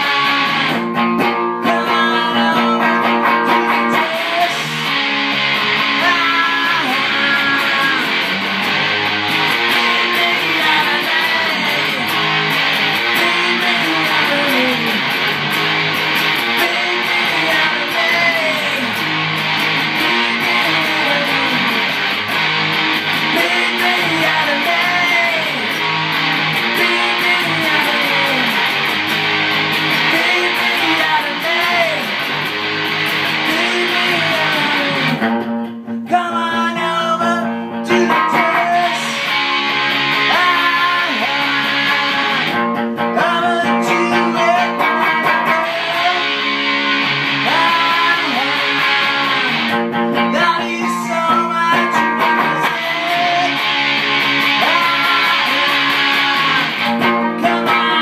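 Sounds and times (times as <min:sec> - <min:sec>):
distorted electric guitar bends: 0:00.0 - 0:58.0.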